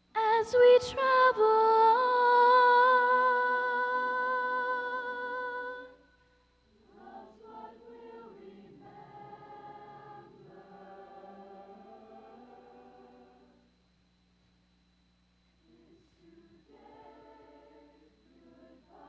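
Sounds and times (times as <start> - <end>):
choir of young voices singing: 6.7 - 13.7, 15.6 - 19.0.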